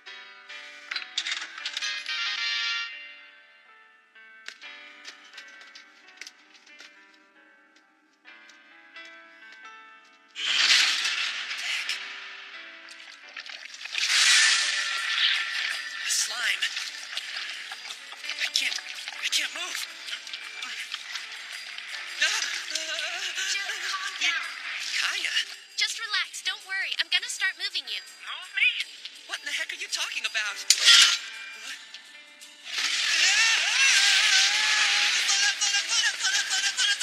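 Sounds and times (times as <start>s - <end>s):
soft background music: 0.0s - 37.0s.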